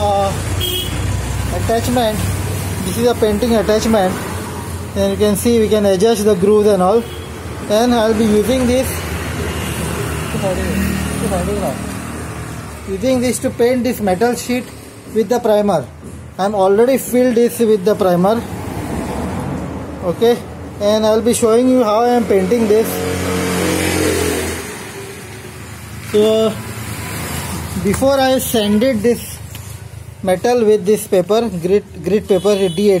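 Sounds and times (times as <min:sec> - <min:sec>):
passing road traffic: 0:00.0 - 0:33.0.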